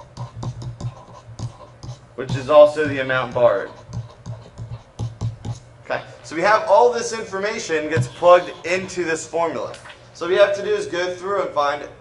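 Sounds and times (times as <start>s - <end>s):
stylus scratching on tablet: 0.0s - 5.7s, 7.6s - 9.5s
low steady hum: 0.0s - 12.0s.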